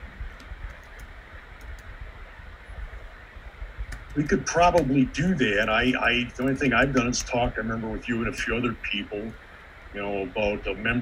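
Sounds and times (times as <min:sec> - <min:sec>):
low fluttering rumble: 0:00.0 - 0:11.0
microphone hiss: 0:00.0 - 0:11.0
faint clicks: 0:00.3 - 0:01.9, 0:03.8 - 0:04.9, 0:05.7 - 0:07.2.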